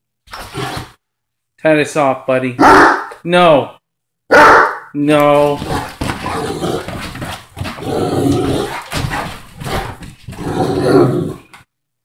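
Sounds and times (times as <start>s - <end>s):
dog growling: 5.4s - 11.6s.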